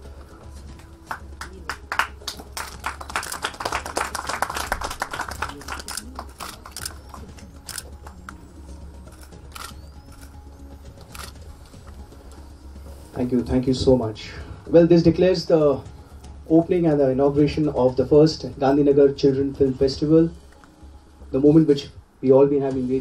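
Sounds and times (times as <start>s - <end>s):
faint background music: 0.0s - 23.0s
camera shutter clicks: 5.8s - 7.9s, 9.1s - 10.4s, 11.0s - 11.4s.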